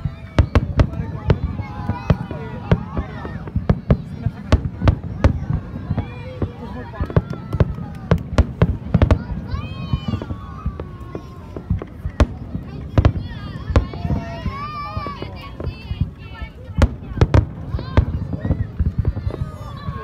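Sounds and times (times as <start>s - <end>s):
fireworks bursting with sharp bangs: 0.0s - 20.0s
people's voices: 0.0s - 20.0s.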